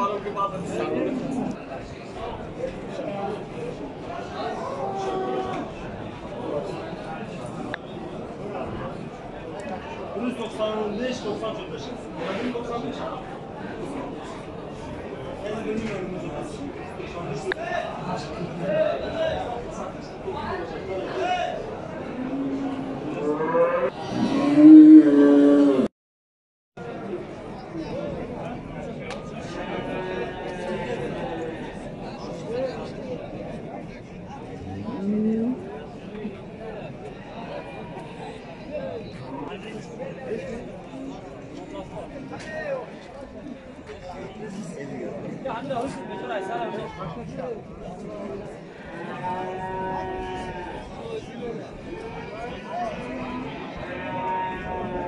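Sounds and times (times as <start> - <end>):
bull mooing: 22.2 - 25.9.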